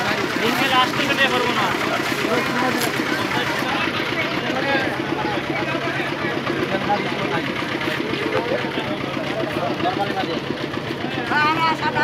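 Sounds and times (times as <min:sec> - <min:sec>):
crowd voices chattering: 0:00.0 - 0:12.0.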